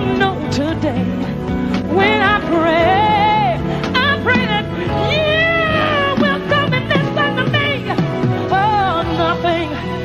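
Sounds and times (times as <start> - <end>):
band backing: 0.0 - 10.0
woman singing pop-soul song: 0.0 - 10.0.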